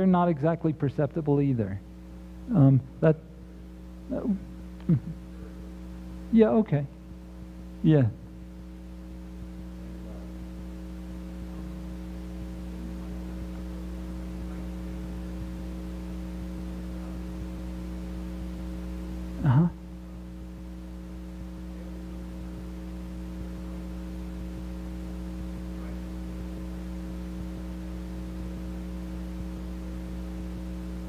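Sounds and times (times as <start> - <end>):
electrical mains hum: 0.0 - 31.0.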